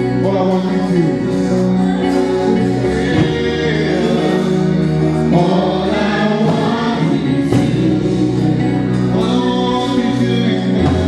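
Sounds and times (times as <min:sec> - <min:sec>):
choir singing gospel: 0:00.0 - 0:11.0
low bass: 0:00.0 - 0:11.0
sustained chords: 0:00.0 - 0:11.0.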